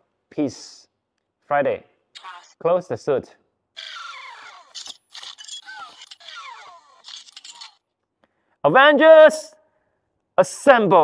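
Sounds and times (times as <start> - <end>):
small clicks: 7.0 - 7.8.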